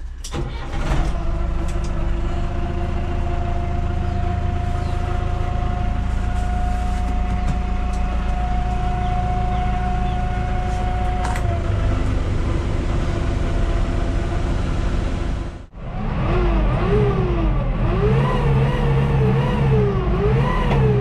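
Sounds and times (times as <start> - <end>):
tractor diesel engine: 0.0 - 21.0.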